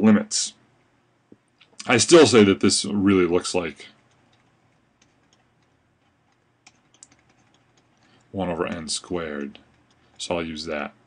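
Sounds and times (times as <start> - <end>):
stylus tapping on screen: 4.0 - 10.4.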